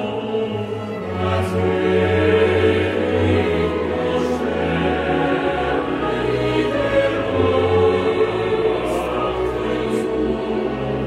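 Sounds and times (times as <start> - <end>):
mixed choir singing: 0.0 - 11.0.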